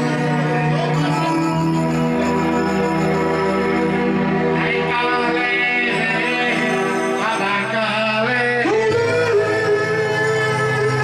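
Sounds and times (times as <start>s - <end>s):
instrumental accompaniment: 0.0s - 11.0s
man singing into a microphone: 4.6s - 11.0s.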